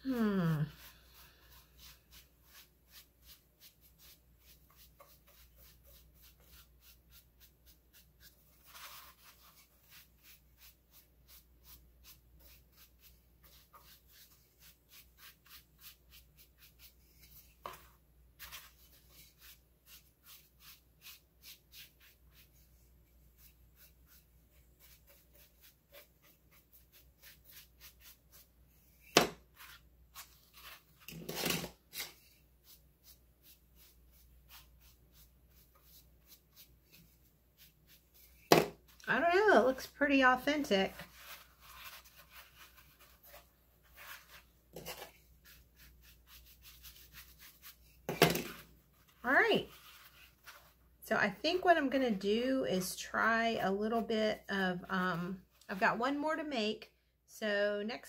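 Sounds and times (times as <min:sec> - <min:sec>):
soft brush strokes: 0:00.0 - 0:56.1.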